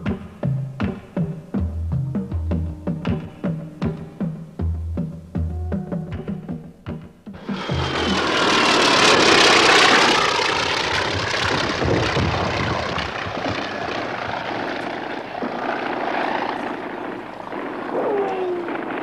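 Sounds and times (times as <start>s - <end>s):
propeller aircraft engine droning: 5.6s - 19.0s.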